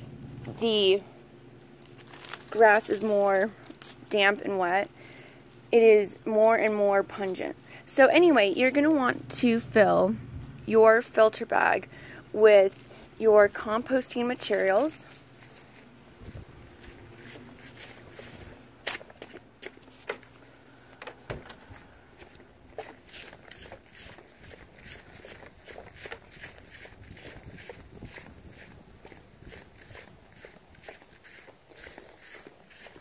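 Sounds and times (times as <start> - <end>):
footsteps on dirt and grass: 1.5 - 9.6, 12.3 - 33.0.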